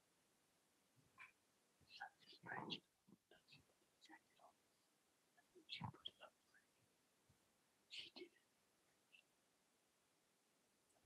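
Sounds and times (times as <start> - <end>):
faint whispering: 1.1 - 6.8, 7.9 - 9.3.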